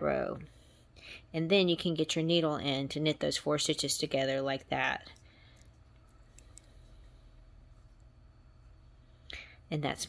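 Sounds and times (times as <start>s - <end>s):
steady low hum: 0.0s - 10.0s
knitting needles clicking: 5.0s - 6.8s.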